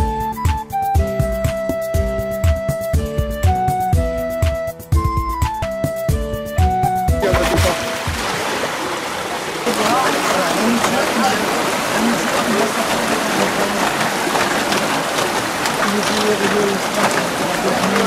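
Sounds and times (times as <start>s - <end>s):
flute-like music: 0.0s - 8.2s
water rushing through sluice gate: 7.2s - 18.0s.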